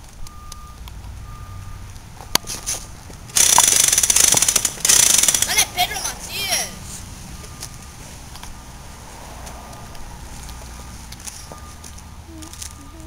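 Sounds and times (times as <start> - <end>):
toy gun rattling: 3.4 - 5.7.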